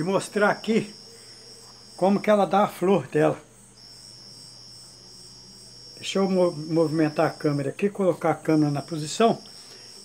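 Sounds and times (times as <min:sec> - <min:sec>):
insect high-pitched trill: 0:00.0 - 0:10.0.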